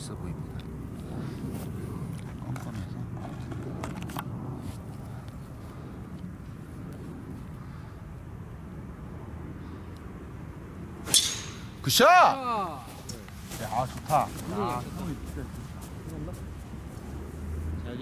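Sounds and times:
golf club striking ball: 11.0s - 11.8s.

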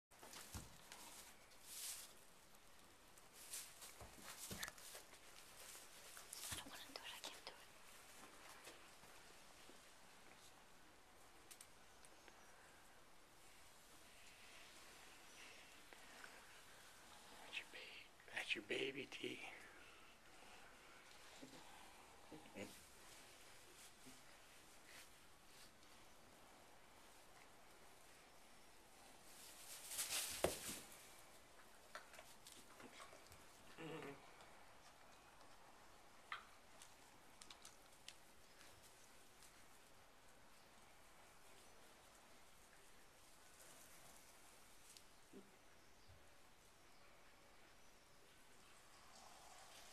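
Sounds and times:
rustling in straw bedding: 0.2s - 6.6s, 29.1s - 31.2s
soft rustles: 0.2s - 10.6s, 22.6s - 26.2s, 27.0s - 33.5s
person whispering faintly: 6.2s - 7.9s, 15.2s - 20.6s, 21.4s - 23.4s.

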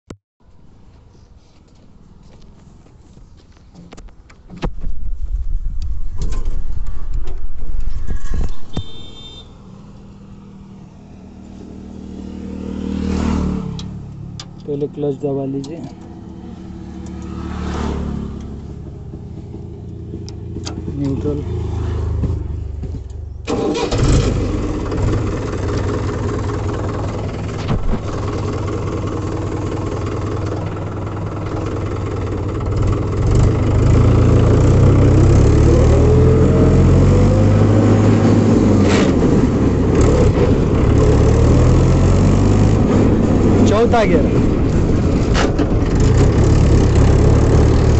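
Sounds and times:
tractor diesel engine running: 18.1s - 21.5s, 22.1s - 47.9s.

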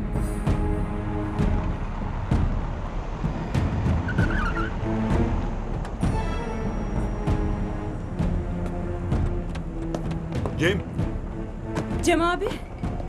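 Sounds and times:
dramatic music with percussive hits: 0.0s - 13.0s
car braking with tyre skid: 2.8s - 6.0s.

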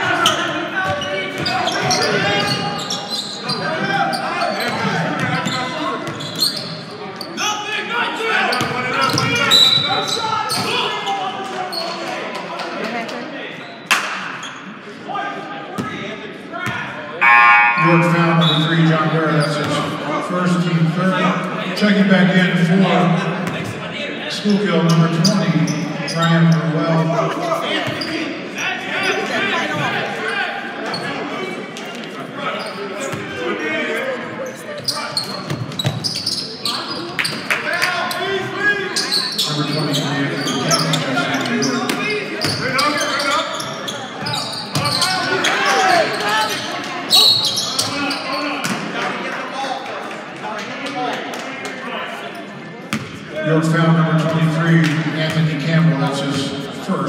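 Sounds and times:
people talking and calling out: 0.0s - 57.0s.

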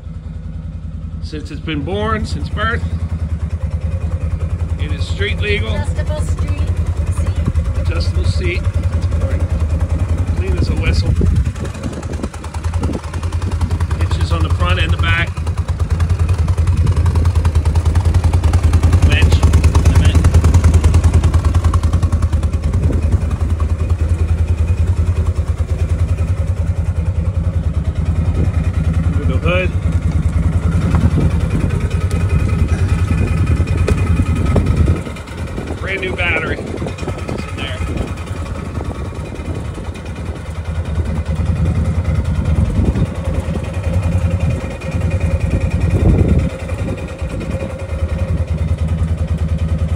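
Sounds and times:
engine idling: 0.0s - 49.9s.

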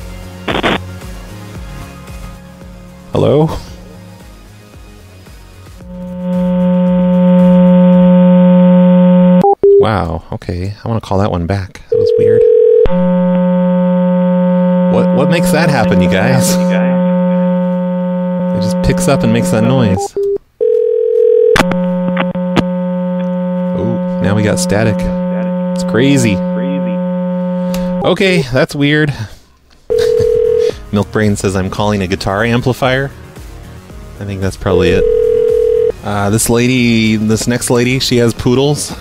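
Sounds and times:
loud electrical buzz over phone: 0.4s - 1.0s, 5.8s - 9.4s, 12.4s - 20.1s, 20.7s - 28.0s, 29.9s - 30.7s
faint phone line noise: 5.9s - 9.8s, 11.9s - 28.0s, 34.8s - 35.9s
steady telephone tone: 5.9s - 9.8s, 11.9s - 28.0s, 29.9s - 30.8s, 34.7s - 35.9s
short beeps: 12.9s - 20.4s.

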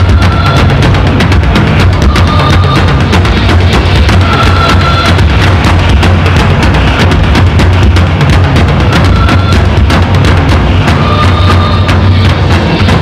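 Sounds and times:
high held tone: 0.0s - 6.4s, 8.7s - 9.9s, 10.8s - 13.0s
industrial percussion music: 0.0s - 13.0s.

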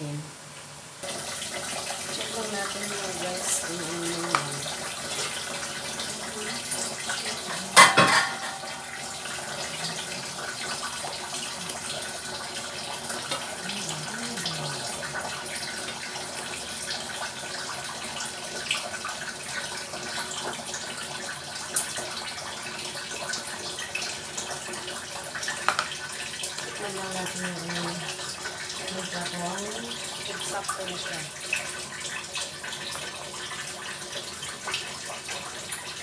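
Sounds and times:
chicken sizzling in a wok: 0.6s - 35.9s
wooden spoon knocking: 25.7s - 25.9s.

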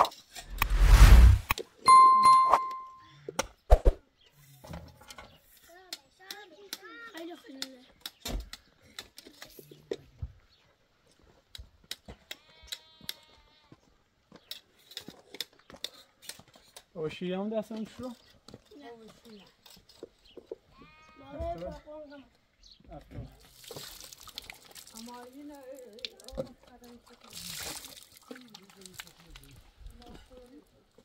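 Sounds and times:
loud rush of noise: 0.5s - 1.5s
bell-like ding: 1.9s - 3.0s.

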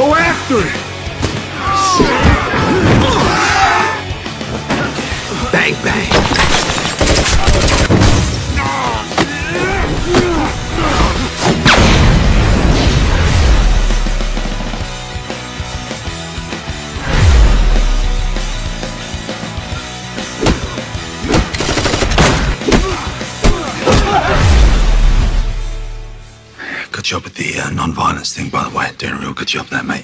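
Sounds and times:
action trailer music: 0.0s - 26.6s
gunshots: 6.1s - 8.4s, 11.4s - 14.1s, 20.4s - 25.4s.

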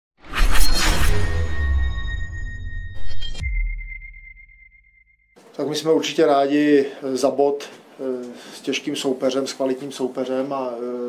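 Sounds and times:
sharp hit: 0.2s - 5.2s
high ringing tone: 0.6s - 5.4s.

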